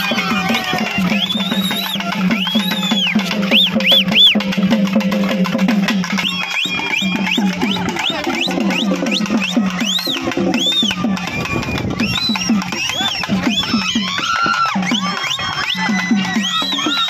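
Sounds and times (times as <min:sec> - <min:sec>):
fast festival drumming: 0:00.0 - 0:17.0
shrill whistles: 0:00.1 - 0:04.4, 0:06.1 - 0:17.0.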